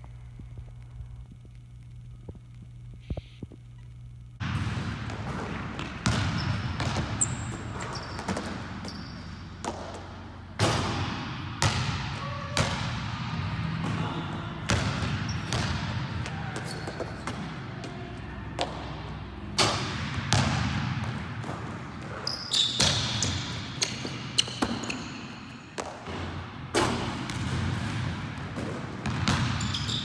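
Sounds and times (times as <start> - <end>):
low steady hum: 0.0 - 7.8
basketball bouncing: 4.4 - 14.1, 14.7 - 30.0.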